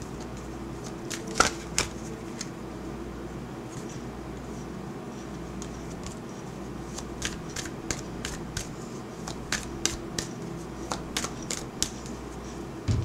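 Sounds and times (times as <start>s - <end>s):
cards being shuffled: 0.2s - 2.5s, 6.9s - 12.2s.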